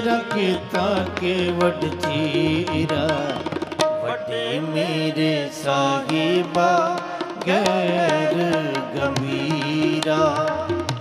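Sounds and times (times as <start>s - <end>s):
harmonium: 0.0s - 11.0s
man singing: 0.0s - 11.0s
tabla strokes: 0.0s - 11.0s.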